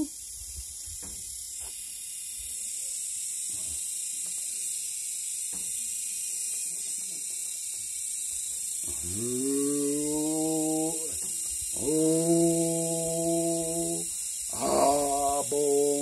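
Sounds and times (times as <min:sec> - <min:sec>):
high-pitched hiss: 0:00.0 - 0:16.0
faint man's voice: 0:11.8 - 0:16.0.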